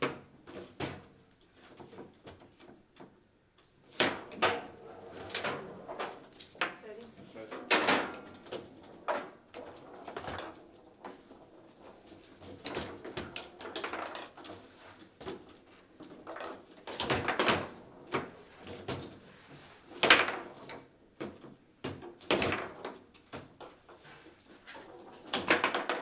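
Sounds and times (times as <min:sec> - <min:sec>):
table football clacks and thuds: 0:00.0 - 0:06.7, 0:07.5 - 0:26.0.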